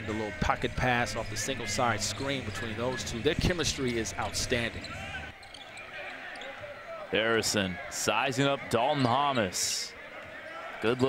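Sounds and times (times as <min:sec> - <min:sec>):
court noise: 0:00.0 - 0:11.0.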